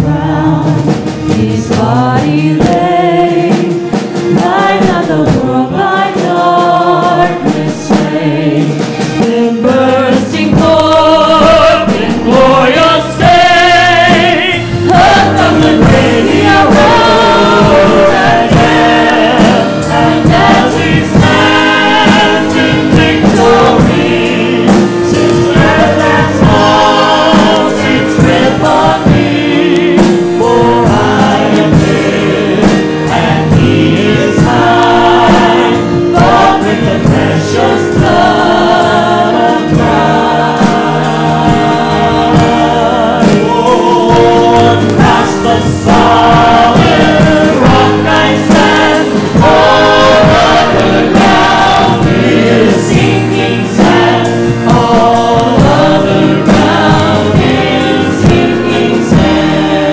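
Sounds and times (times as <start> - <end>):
digital piano accompaniment: 0.0 - 59.9
group singing in harmony: 0.0 - 59.9.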